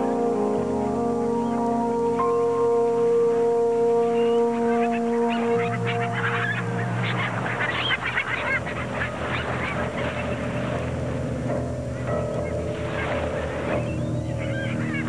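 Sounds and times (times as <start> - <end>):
soft background music: 0.0 - 15.0
seabird flock squawking: 3.5 - 15.0.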